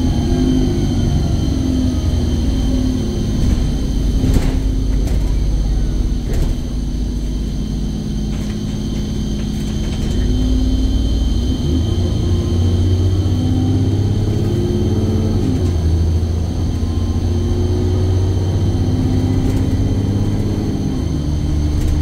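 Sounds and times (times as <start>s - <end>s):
bus diesel engine pulling hard: 0.0s - 22.0s.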